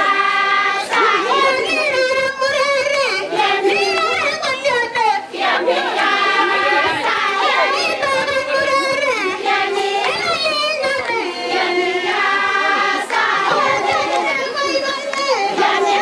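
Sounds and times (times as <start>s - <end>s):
women singing in chorus: 0.0s - 16.0s.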